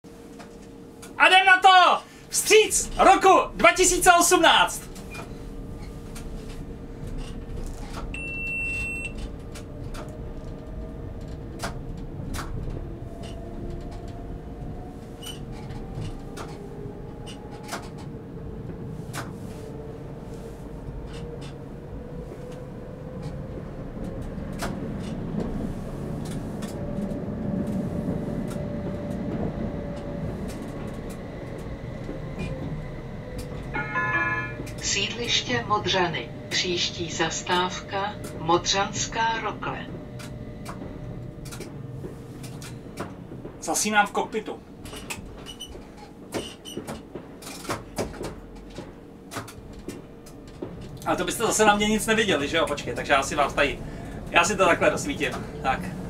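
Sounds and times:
tram wheels rumbling on rail: 0:00.1 - 0:56.0
stop announcement: 0:01.0 - 0:05.0, 0:33.7 - 0:42.2, 0:51.0 - 0:56.0
short high beep: 0:33.8 - 0:34.7.

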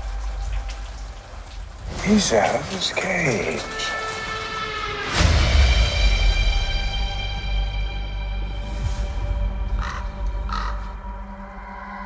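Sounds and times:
dark music drone: 0:03.7 - 0:12.0
crow cawing: 0:09.6 - 0:12.0.

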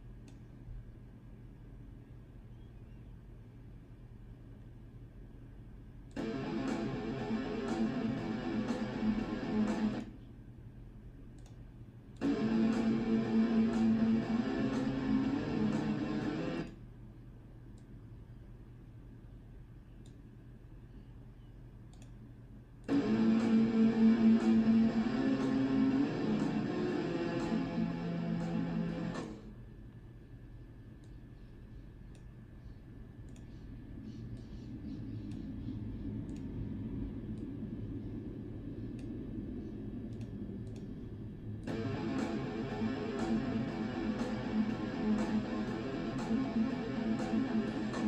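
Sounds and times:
low hum: 0:00.0 - 0:48.0
faint clicks: 0:00.2 - 0:00.5, 0:11.3 - 0:12.3, 0:20.0 - 0:20.3, 0:21.8 - 0:22.9, 0:32.0 - 0:32.4, 0:33.2 - 0:37.6, 0:40.1 - 0:41.0.

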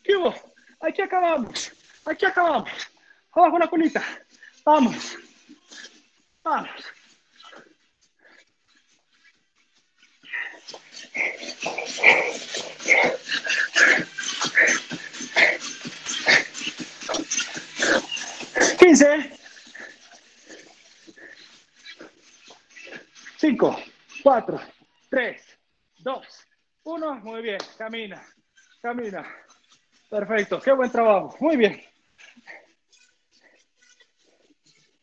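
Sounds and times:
short strained vocal sound: 0:10.2 - 0:22.2
man breathing hard: 0:10.2 - 0:23.2.

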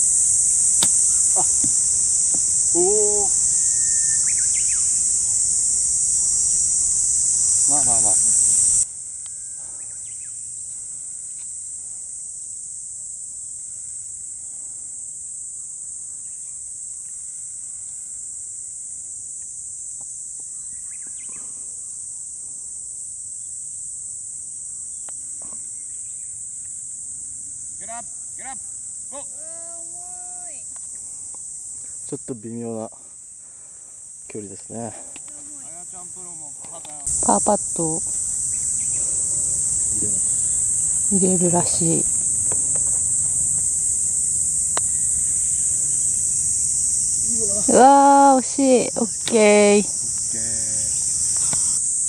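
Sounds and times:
cicadas droning: 0:00.0 - 0:52.0.

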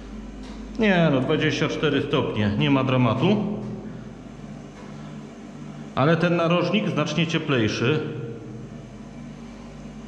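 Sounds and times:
fan whir: 0:00.0 - 0:10.0.

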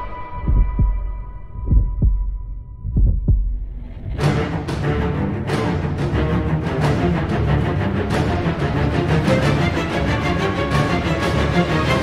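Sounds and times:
heartbeat thumps: 0:00.3 - 0:04.2.

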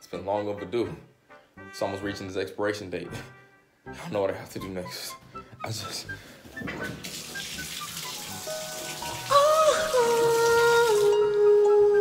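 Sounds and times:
shower water spraying: 0:06.8 - 0:11.2
music with long held notes: 0:08.1 - 0:12.0.

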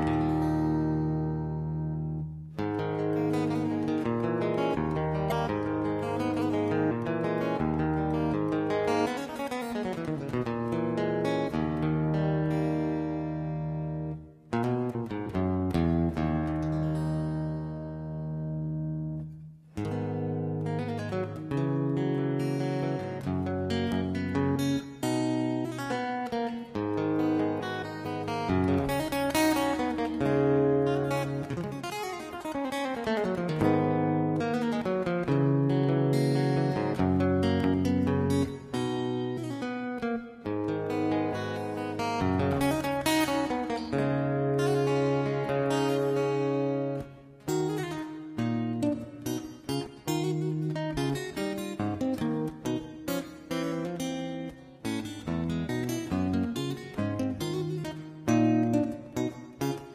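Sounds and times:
acoustic guitar melody: 0:00.0 - 0:59.9.

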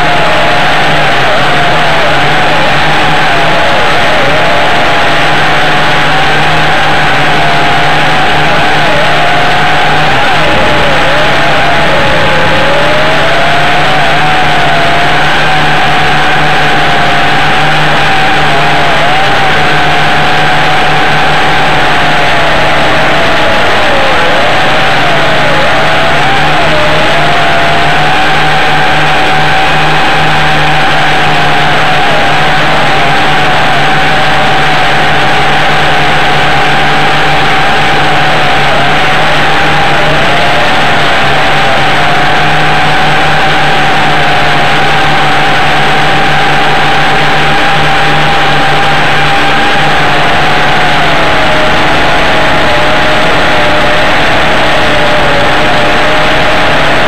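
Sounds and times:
quadcopter motors whining: 0:00.0 - 0:57.0.

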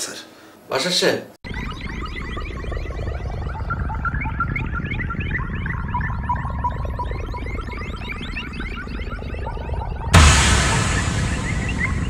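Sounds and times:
warbling synthesizer chirps: 0:01.4 - 0:12.0
low rumble: 0:10.2 - 0:12.0.

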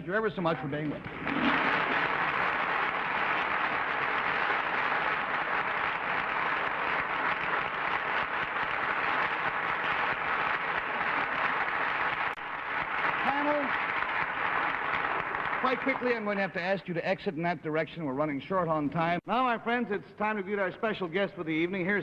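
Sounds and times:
audience applauding: 0:00.9 - 0:16.6.

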